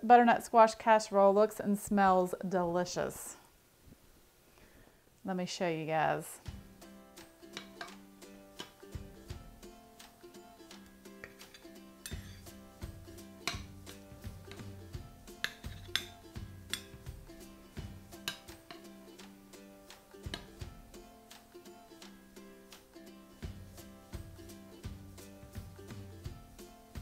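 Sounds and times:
soft background music: 0:06.0 - 0:27.0
metal spoon scraping glass dish: 0:11.2 - 0:12.5, 0:15.5 - 0:16.9.

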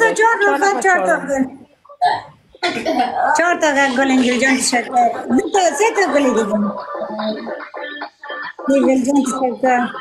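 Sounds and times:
woman speaking on video call: 0:00.0 - 0:01.6, 0:03.2 - 0:07.3, 0:08.6 - 0:10.0.

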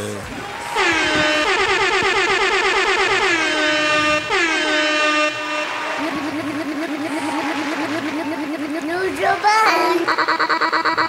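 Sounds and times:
warbling air horn: 0:00.4 - 0:11.0.

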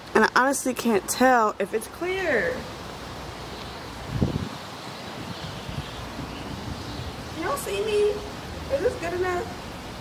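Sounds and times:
wind buffeting microphone: 0:03.7 - 0:10.0.

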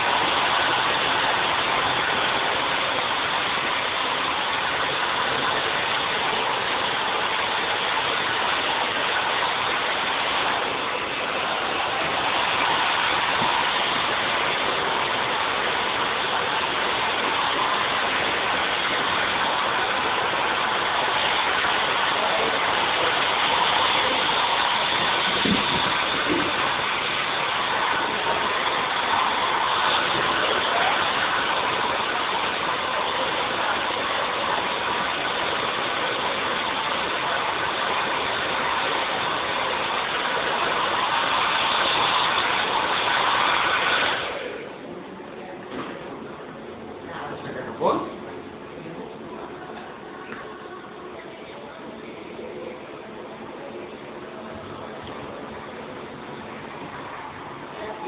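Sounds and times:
hair dryer blowing: 0:00.0 - 0:44.8.

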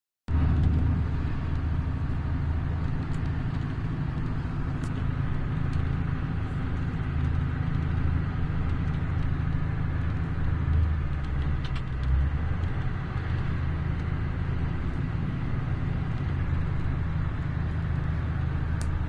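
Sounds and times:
vehicle engine drone: 0:00.3 - 0:19.0.

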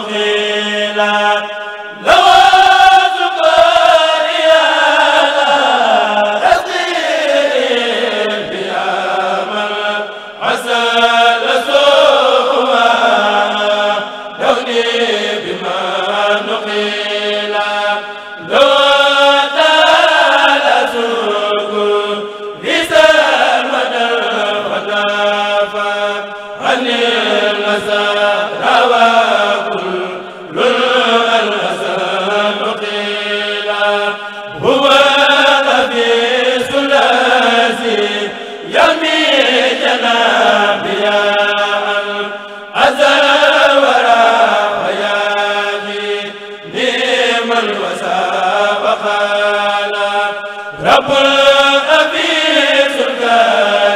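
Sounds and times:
men chanting in unison: 0:00.0 - 0:53.9.

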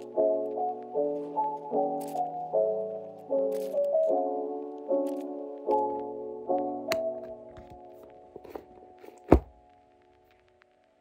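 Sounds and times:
soft background music: 0:00.0 - 0:11.0
book closing thunk: 0:08.4 - 0:09.6.

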